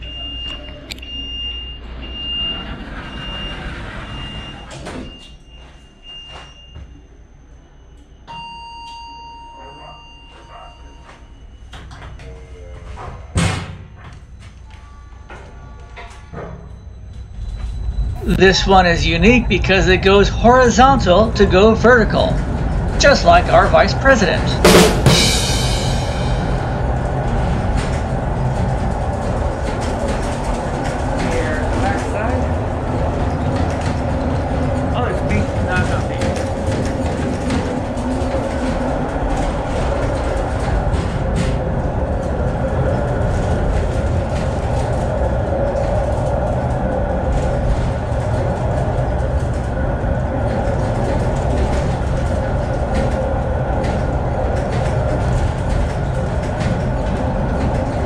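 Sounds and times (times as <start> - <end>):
rail car rumbling on rails: 0.0 - 58.0.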